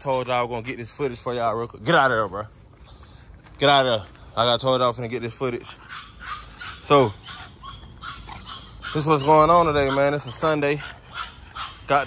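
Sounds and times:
puppy yelp: 5.6 - 12.0.

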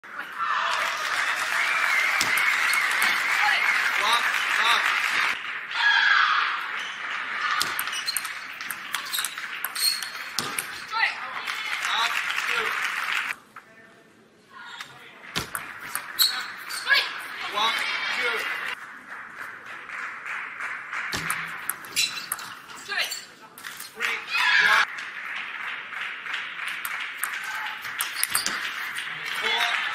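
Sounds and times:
audience applauding: 0.4 - 5.7, 6.6 - 13.4, 17.2 - 22.0, 24.0 - 29.9
table tennis ball clicking: 7.6 - 10.8, 15.4 - 16.4, 21.1 - 22.6, 26.7 - 28.8.

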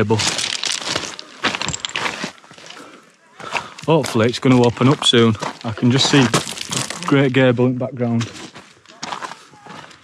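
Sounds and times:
footsteps crunching on scree: 0.0 - 10.0.

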